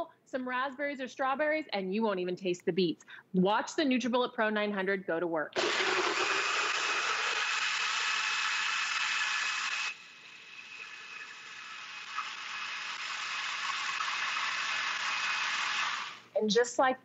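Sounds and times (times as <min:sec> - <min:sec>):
blender motor whining: 0:05.6 - 0:16.3.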